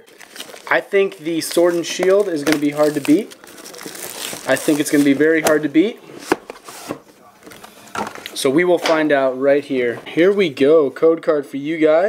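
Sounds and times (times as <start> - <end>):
cardboard rustling: 0.0 - 8.2.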